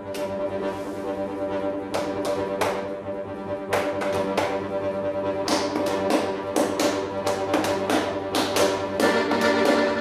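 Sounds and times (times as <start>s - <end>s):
accordion playing chords: 9.0s - 10.0s.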